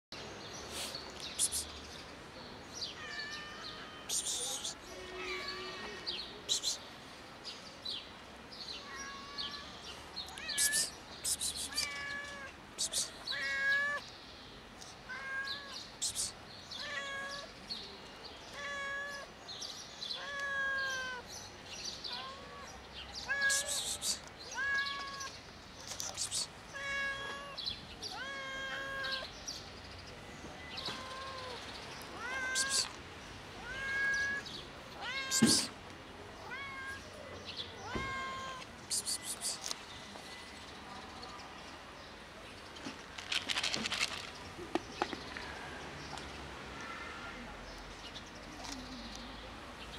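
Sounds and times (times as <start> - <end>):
cat meowing: 3.0 - 6.0, 8.8 - 9.8, 15.1 - 15.8, 16.8 - 17.5, 18.5 - 19.3, 20.2 - 21.3, 22.1 - 25.3, 26.2 - 29.3, 30.8 - 33.0, 33.6 - 35.7, 36.4 - 37.0, 37.8 - 38.7.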